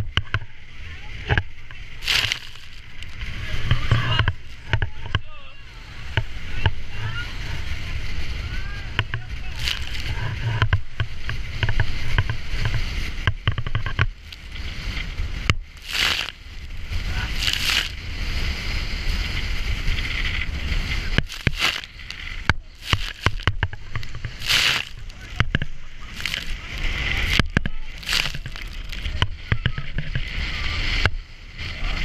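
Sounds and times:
powerboat engine rumble: 0.0 - 32.0
waves splashing against hull: 0.0 - 32.0.

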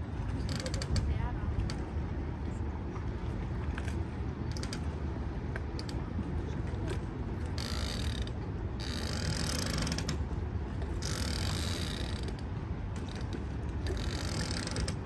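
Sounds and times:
boat engine rumble: 0.0 - 15.0.

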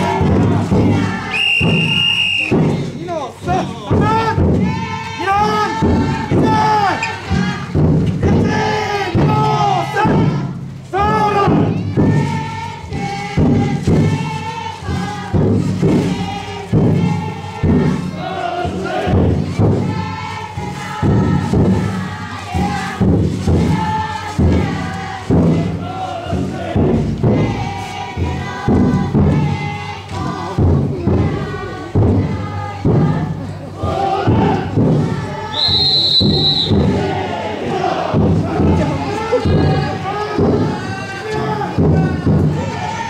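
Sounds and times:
drum beaten in steady rhythm: 0.0 - 43.0
group chanting and calling: 0.0 - 43.0.

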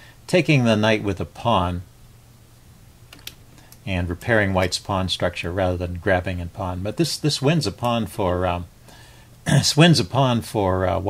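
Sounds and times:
person speaking: 0.3 - 1.9, 3.2 - 8.7, 9.4 - 11.0
faint computer clicks: 3.1 - 3.9.

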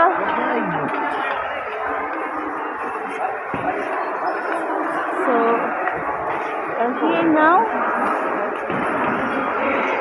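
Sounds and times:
murmur of voices in a hall: 0.0 - 10.0
room noise: 0.0 - 10.0.

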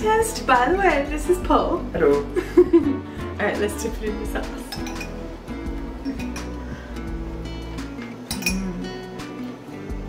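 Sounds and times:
background music with held notes: 0.0 - 10.0
plates and spoon clinking: 4.7 - 5.2, 6.0 - 6.6, 8.0 - 8.8.

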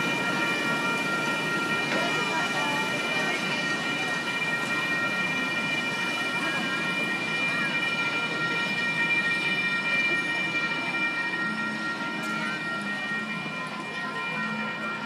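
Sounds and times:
railroad crossing bell ringing: 0.0 - 15.0
train rolling over rails: 0.0 - 15.0.

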